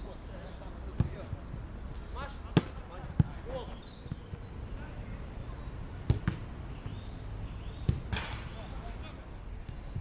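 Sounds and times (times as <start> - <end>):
football being kicked: 1.0 - 1.3, 2.5 - 3.4, 6.0 - 7.0, 7.8 - 8.4.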